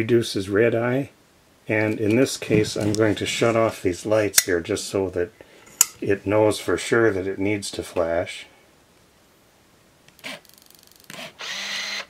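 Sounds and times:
film advance motor running: 10.2s - 12.0s.

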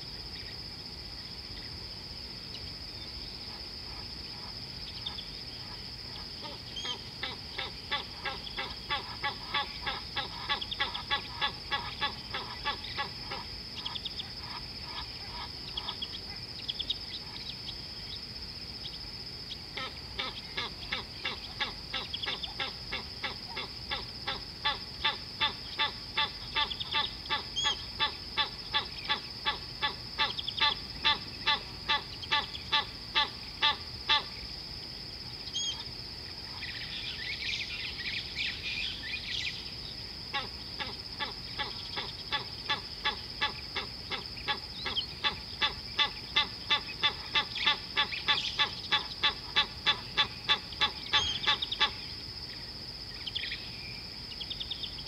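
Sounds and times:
scattered bird chirps: 50.3s - 51.9s.

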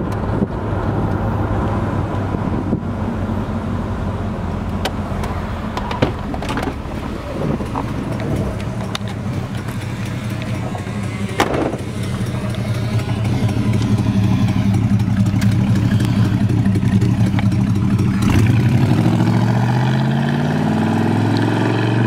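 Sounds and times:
car engine running: 0.0s - 21.4s.

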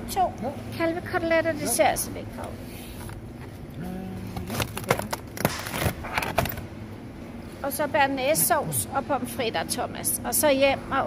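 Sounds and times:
low steady hum: 0.0s - 11.0s
plastic packaging crackling: 4.4s - 6.7s.

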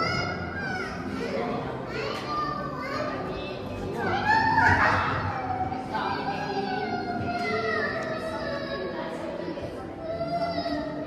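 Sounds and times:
children chattering and calling out: 0.0s - 11.0s
high-pitched child's voice: 0.0s - 11.0s.

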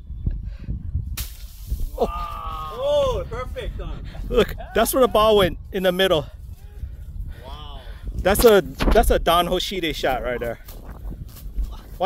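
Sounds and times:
golf club thrashing through bushes: 1.1s - 2.1s
man's drawn-out exclamation: 2.0s - 5.3s, 7.4s - 7.9s.

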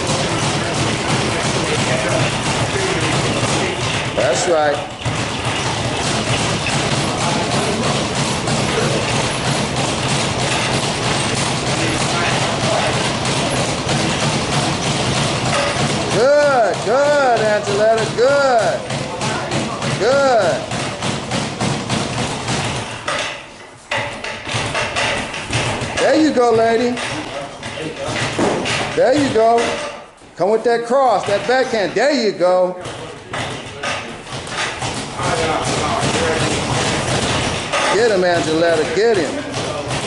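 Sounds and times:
boxing gloves thudding: 0.0s - 30.1s, 32.8s - 40.0s.

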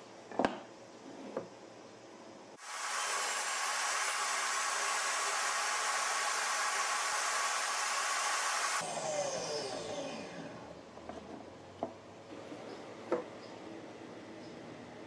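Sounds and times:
table saw motor whine: 2.6s - 10.8s.

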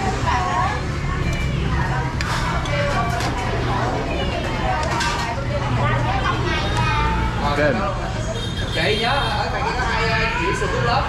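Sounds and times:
people talking: 0.0s - 11.0s
street traffic hum: 0.0s - 11.0s.

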